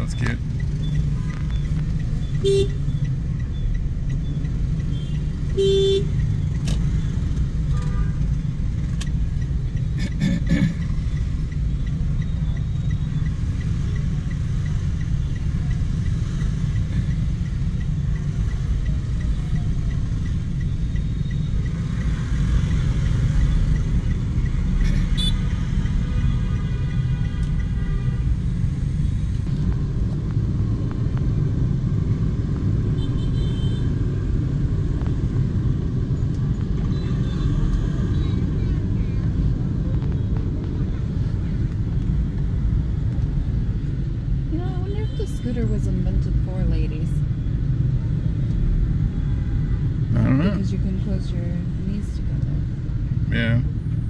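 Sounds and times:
traffic rumble of engines and tyres: 0.0 - 54.0
car horn toot: 2.4 - 2.8, 5.0 - 6.2, 24.9 - 28.3, 33.0 - 33.9.

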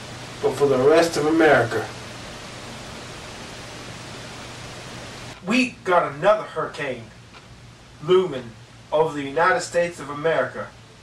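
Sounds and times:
faint low hum: 0.0 - 11.0
steady hiss: 0.0 - 11.0.

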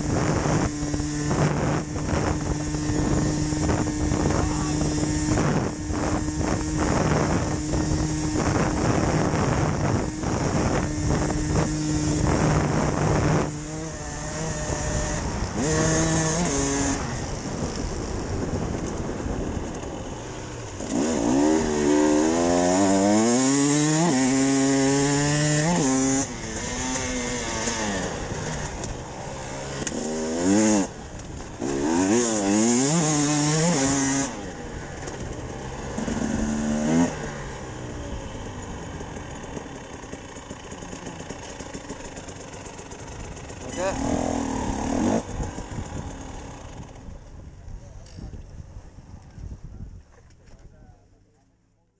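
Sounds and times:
wind rushing over microphone: 0.0 - 40.4, 42.2 - 51.2
motorcycle engine revving: 0.0 - 49.4.

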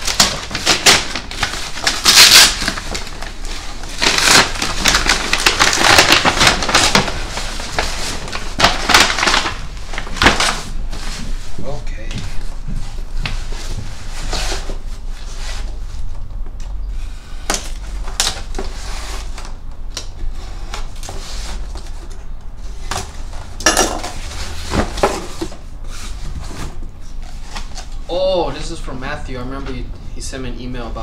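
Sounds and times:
tape being slit: 2.0 - 2.8.

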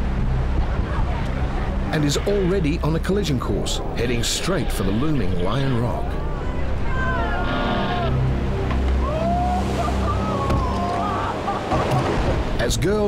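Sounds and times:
heavy surf breaking: 8.6 - 13.0.

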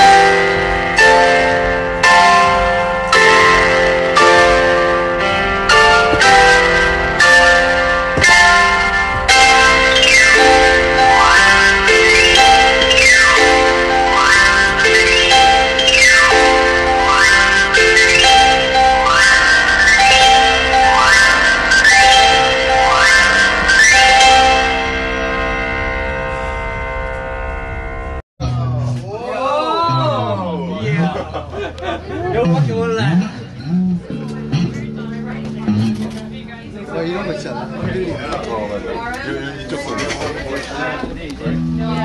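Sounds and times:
piano chords: 0.0 - 42.0.

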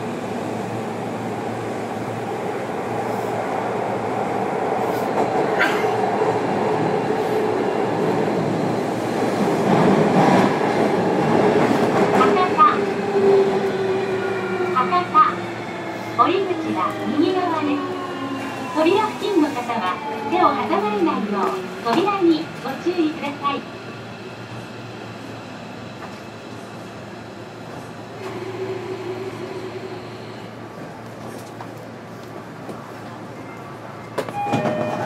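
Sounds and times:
train wheel and motor rumble: 0.0 - 35.0
train clattering: 34.1 - 35.0.

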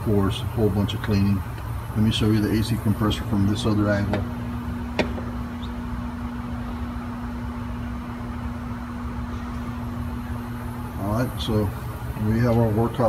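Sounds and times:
low mechanical hum: 0.0 - 13.0.

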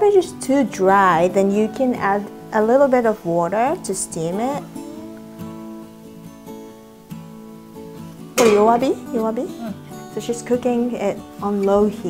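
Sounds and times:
acoustic guitar music: 0.0 - 12.0.

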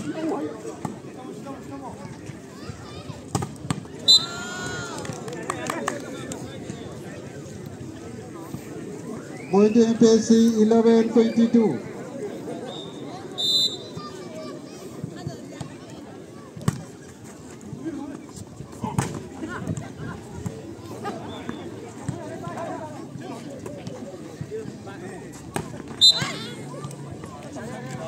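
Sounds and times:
crowd chatter: 0.0 - 28.0
short high whistle blasts: 12.7 - 13.9, 26.0 - 26.4.

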